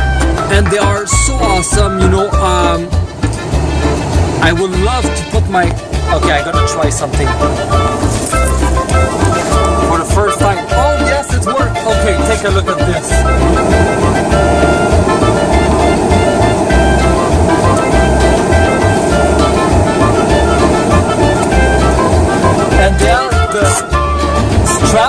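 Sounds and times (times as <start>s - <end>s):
held melodic tones: 0.0s - 25.0s
music with repeating bass beat: 0.0s - 25.0s.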